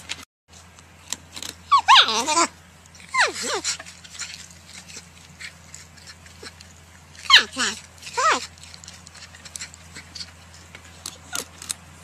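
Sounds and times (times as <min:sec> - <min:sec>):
porcupine whining call: 0:01.6 - 0:11.8.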